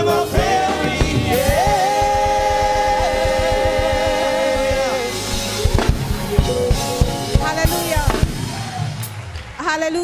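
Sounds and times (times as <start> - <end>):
choir singing in harmony: 0.0 - 6.8
band with drums: 0.0 - 9.6.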